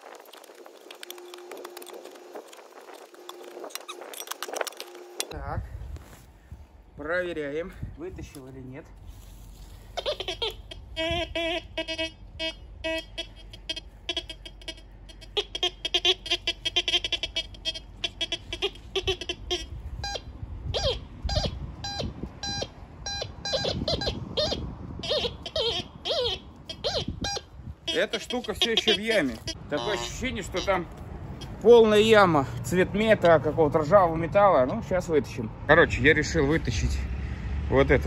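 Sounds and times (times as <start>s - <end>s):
metal detector beeping: 0.8s - 5.3s, 19.5s - 30.7s.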